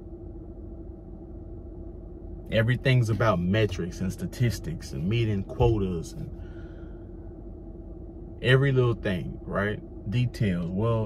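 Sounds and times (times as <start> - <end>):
car cabin hum: 0.0 - 11.0
faint steady tone: 0.0 - 11.0.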